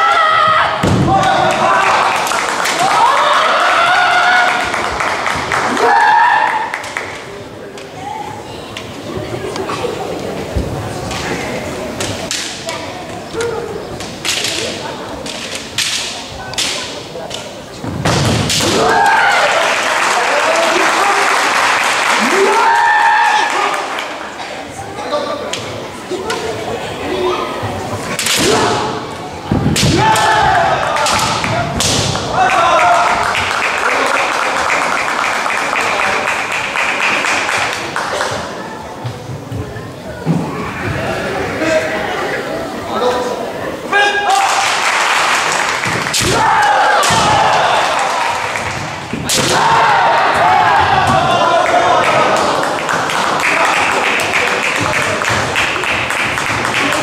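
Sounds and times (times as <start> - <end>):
loud drawn-out shouts: 0.0 - 6.9, 18.5 - 24.2, 28.2 - 34.8, 43.8 - 55.8
spectators applauding: 1.2 - 7.2, 19.0 - 24.4, 30.8 - 38.5, 44.4 - 46.1, 47.6 - 49.1, 50.0 - 57.0.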